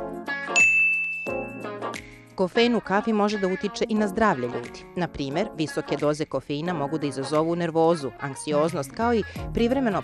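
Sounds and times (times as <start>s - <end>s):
background music: 0.0s - 10.0s
bright ding: 0.6s - 1.8s.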